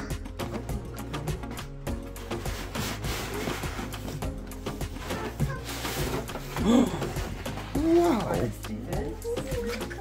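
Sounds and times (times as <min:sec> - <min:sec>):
background music: 0:00.0 - 0:10.0
wrapping paper crinkling: 0:02.0 - 0:08.6.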